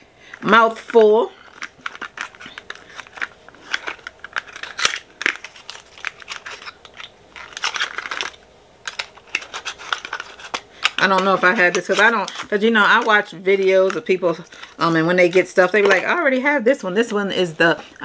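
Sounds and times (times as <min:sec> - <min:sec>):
papery rustles: 0:01.4 - 0:15.9.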